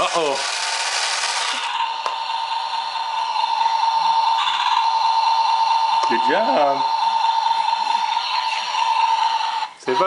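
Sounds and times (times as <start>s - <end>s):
toy motor whirring: 0.0s - 10.0s.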